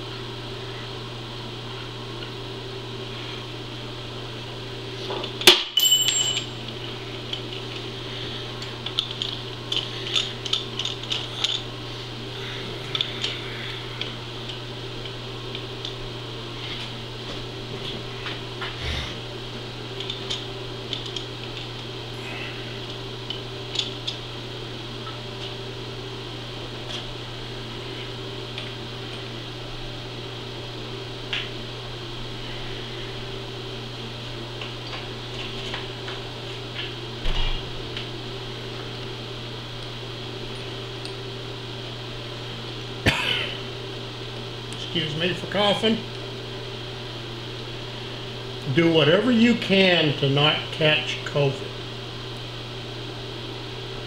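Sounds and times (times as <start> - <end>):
steady low hum: 0.0 - 54.0.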